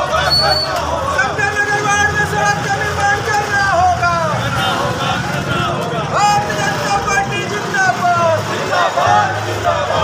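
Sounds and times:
crowd shouting slogans: 0.0s - 10.0s.

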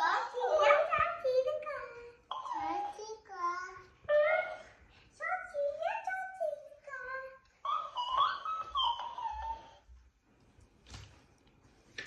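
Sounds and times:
toy repeating in squeaky voice: 2.3s - 3.2s, 7.6s - 9.8s.

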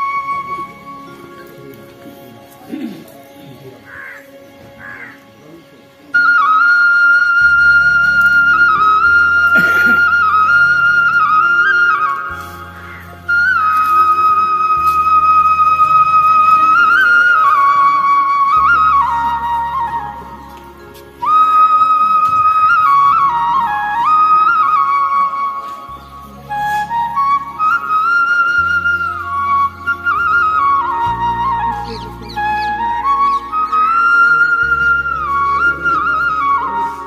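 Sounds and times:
slow flute melody: 0.0s - 37.0s
low sustained bass notes: 7.4s - 37.0s.

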